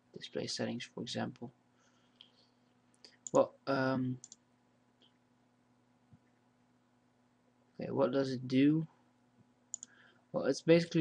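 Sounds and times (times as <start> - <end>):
low steady hum: 0.0 - 11.0
computer mouse clicks: 4.2 - 4.4, 9.7 - 10.0.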